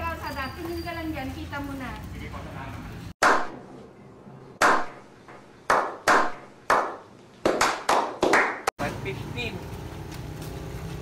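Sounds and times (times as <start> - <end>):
sharp clap-like hits: 3.2 - 3.6, 4.6 - 8.7.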